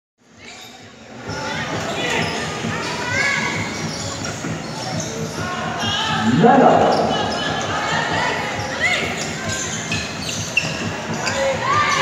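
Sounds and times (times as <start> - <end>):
players and onlookers noise: 0.2 - 12.0.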